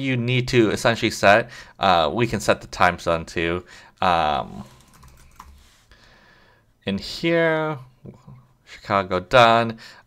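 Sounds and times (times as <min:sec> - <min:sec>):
computer keyboard typing: 0:04.5 - 0:05.6.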